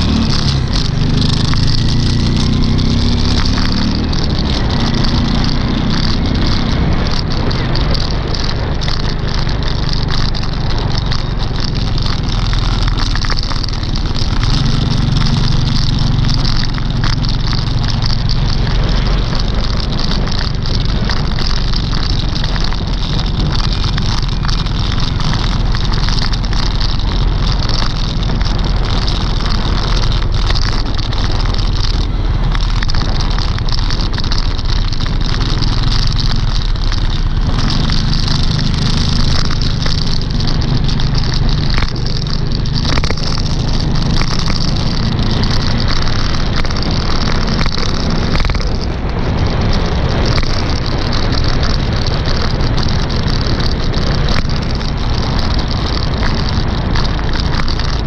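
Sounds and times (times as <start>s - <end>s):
rumbling wind and road noise: 0.0s - 58.0s.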